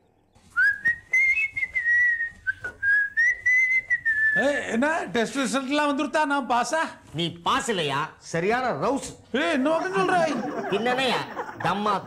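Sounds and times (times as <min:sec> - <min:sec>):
person whistling a tune: 0:00.6 - 0:04.4.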